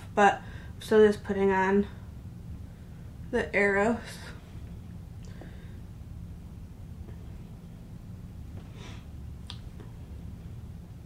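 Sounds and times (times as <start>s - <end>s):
low room hum: 0.0s - 11.0s
soft rush of noise: 0.0s - 11.0s.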